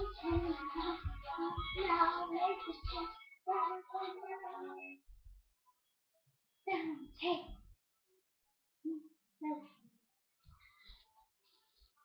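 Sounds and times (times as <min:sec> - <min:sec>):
low thumps: 0:00.0 - 0:02.1
girl singing: 0:00.0 - 0:05.0.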